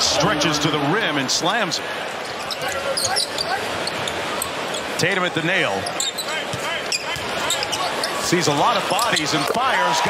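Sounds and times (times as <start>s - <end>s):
arena crowd noise: 0.0s - 10.0s
sneakers squeaking on hardwood: 2.4s - 4.9s, 5.8s - 8.3s.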